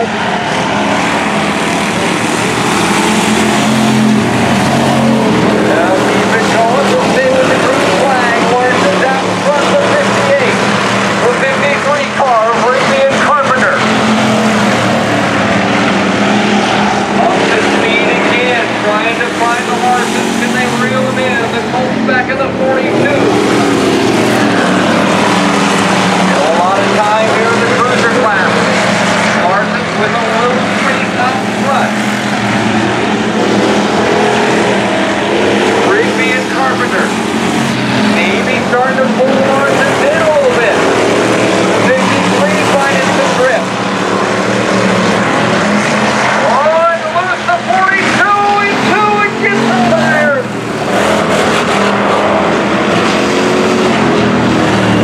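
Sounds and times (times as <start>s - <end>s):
race car engines at speed: 0.0s - 55.0s.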